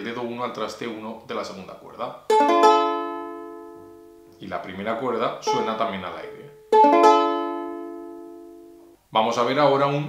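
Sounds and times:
ukulele chord strummed: 2.3s - 4.3s, 5.4s - 8.9s.

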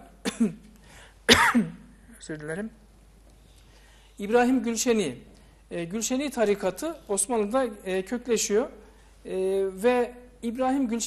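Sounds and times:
man coughing: 0.2s - 0.7s, 1.3s - 1.9s.

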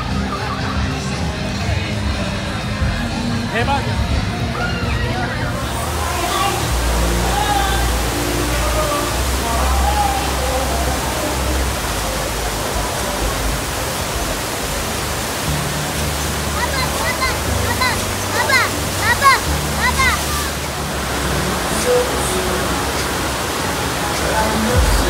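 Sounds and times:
rushing water: 0.0s - 25.0s.

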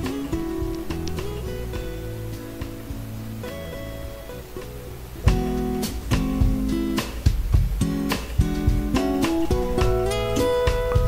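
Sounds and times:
acoustic guitar music: 0.0s - 11.0s.

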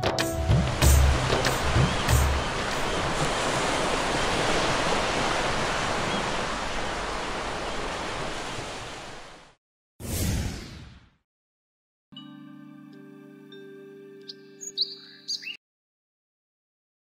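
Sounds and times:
ocean surf breaking on beach: 0.6s - 9.6s.

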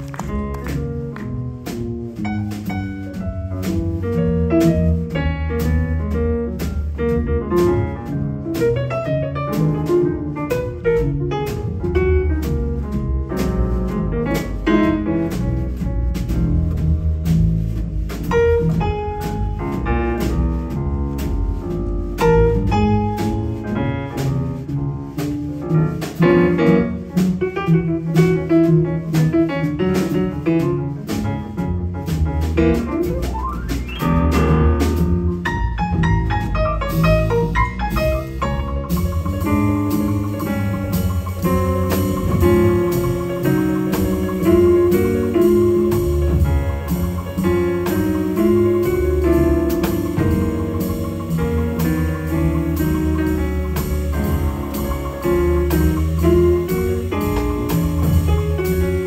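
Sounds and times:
drum kit: 0.0s - 59.0s
grand piano run: 0.0s - 59.0s
plucked double bass: 0.0s - 59.0s.

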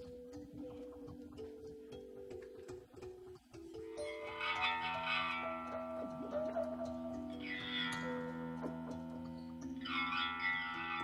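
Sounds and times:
guitar chord ringing: 4.0s - 11.0s.

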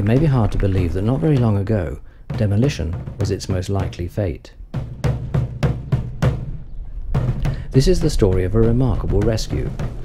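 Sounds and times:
snare and bass drum march: 0.0s - 10.0s.

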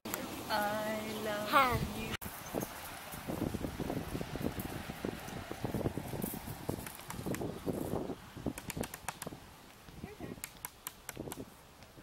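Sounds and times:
rustling wind-like noise: 0.1s - 12.0s
sharp clicks: 8.6s - 9.3s, 10.4s - 11.9s.

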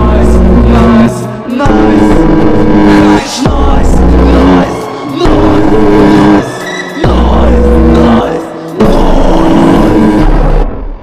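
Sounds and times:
deep rumble: 0.0s - 11.0s
harsh distorted noise music: 0.0s - 11.0s.

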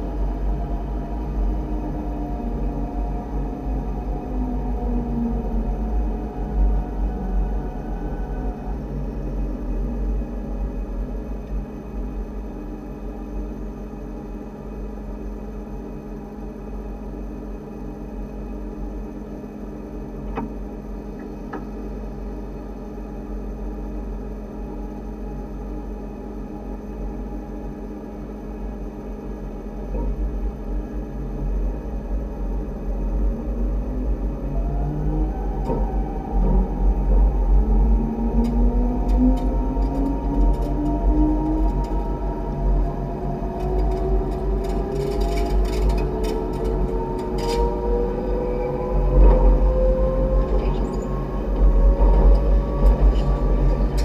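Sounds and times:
electrical hum and low rumble: 0.0s - 54.0s
wheels clicking over rail joints: 43.6s - 47.6s.

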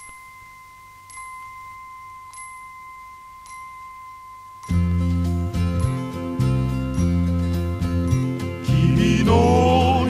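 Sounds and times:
bright ting: 0.0s - 7.2s
steady high tone: 0.0s - 10.0s.

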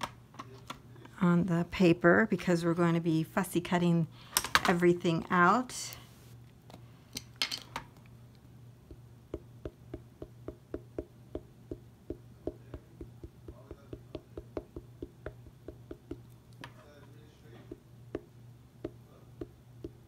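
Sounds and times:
ink pad tapping on stamp: 8.9s - 16.8s, 17.6s - 20.0s.

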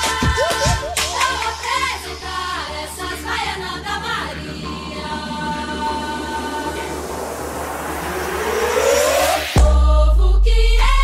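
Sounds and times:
noisy whoosh: 1.5s - 10.4s.

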